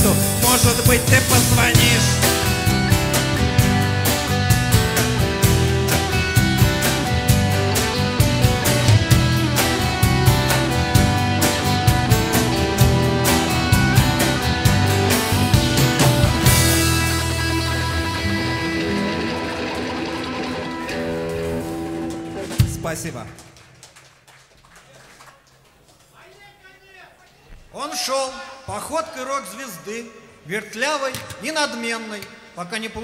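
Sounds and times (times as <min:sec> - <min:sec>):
rock band playing live: 0:00.0 - 0:23.0.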